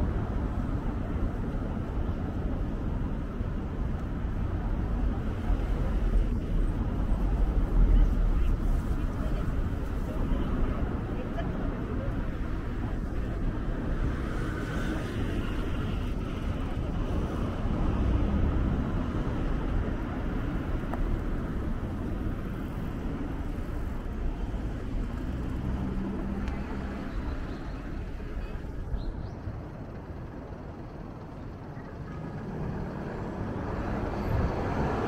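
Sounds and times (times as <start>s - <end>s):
city traffic rumble: 0.0s - 35.0s.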